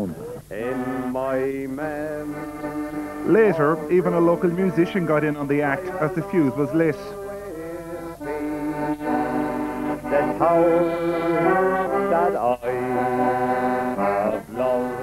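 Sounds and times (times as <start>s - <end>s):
piano accordion playing slow tune: 0.0s - 15.0s.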